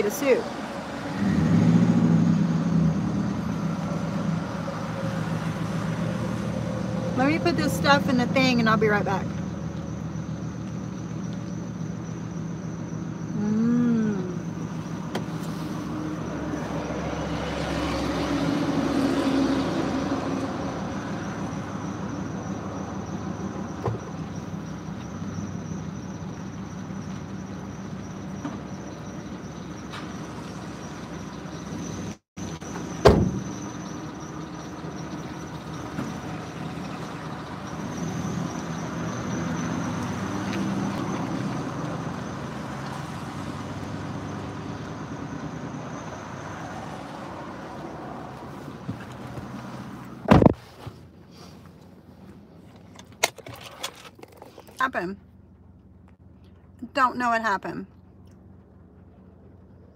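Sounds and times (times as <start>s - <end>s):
loud thump: 33.0s - 33.5s, 50.3s - 50.6s.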